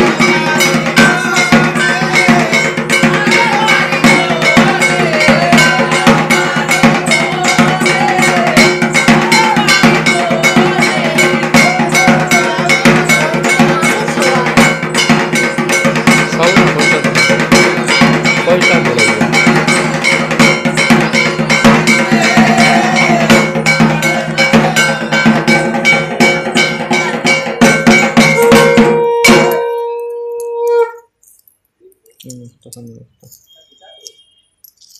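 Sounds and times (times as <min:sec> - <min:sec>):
bells struck rapidly: 0:00.0 - 0:30.9.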